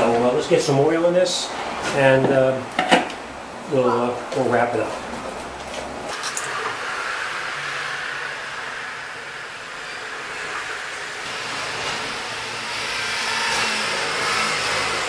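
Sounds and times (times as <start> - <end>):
motor oil pouring: 6.1 - 15.0.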